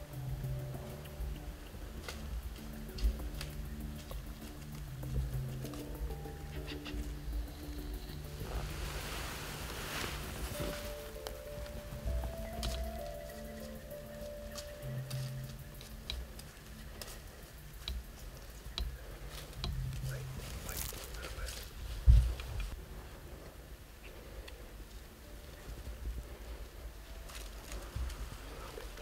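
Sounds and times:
gear clicks and rustles: 0:00.0 - 0:29.0.

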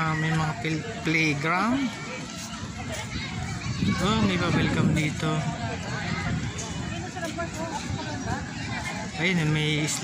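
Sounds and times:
children playing: 0:00.0 - 0:10.0.

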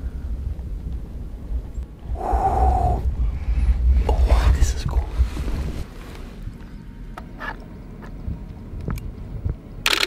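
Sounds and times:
constant low rumble: 0:00.0 - 0:09.9
man's breathy excited vocal: 0:02.2 - 0:03.1.

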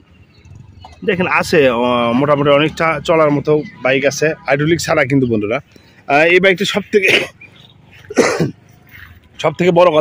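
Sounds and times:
man coughing: 0:07.0 - 0:07.4, 0:08.0 - 0:08.7.

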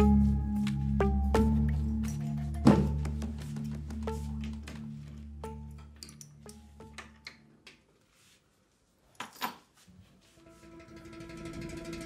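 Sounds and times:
music of held tones: 0:00.0 - 0:07.4, 0:10.2 - 0:12.0.

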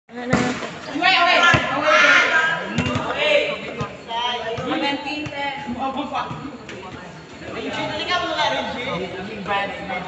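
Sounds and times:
players shouting: 0:00.9 - 0:05.8.

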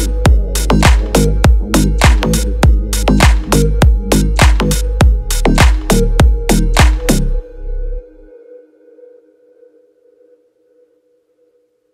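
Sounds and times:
heavy drum hit with deep bass: 0:00.3 - 0:06.9.

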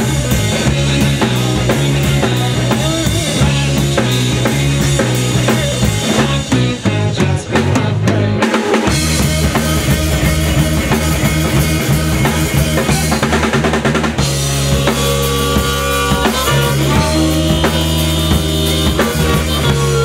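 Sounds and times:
bass guitar: 0:00.0 - 0:20.0
drum kit beat: 0:00.0 - 0:20.0
electric guitar: 0:00.0 - 0:20.0.

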